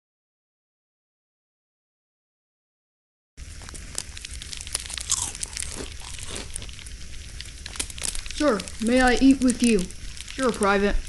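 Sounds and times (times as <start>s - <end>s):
fire crackling and popping: 3.4s - 11.0s
low steady hiss: 3.4s - 11.0s.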